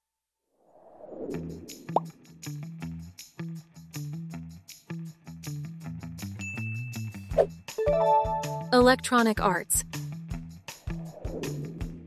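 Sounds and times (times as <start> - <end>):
music with steady beat: 7.6 - 8.9.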